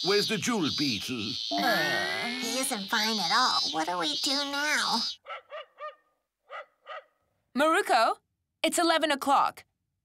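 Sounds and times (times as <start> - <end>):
dog barking: 5.2 - 7.2.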